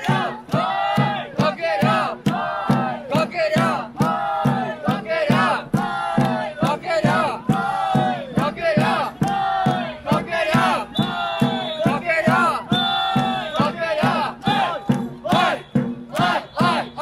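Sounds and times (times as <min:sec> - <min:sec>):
group chanting in rhythm: 0:00.0 - 0:17.0.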